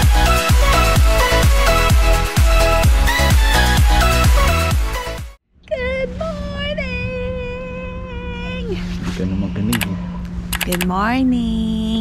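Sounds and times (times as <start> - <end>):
sharp clicks: 9.7 - 9.9, 10.5 - 10.9.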